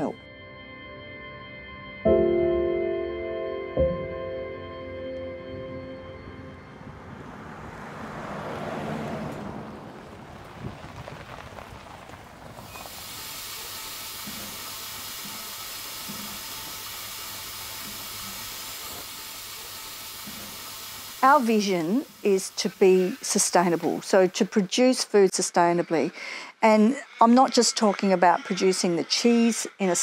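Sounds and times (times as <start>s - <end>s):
background music: 0.0s - 7.4s
milking machinery hissing: 12.6s - 30.0s.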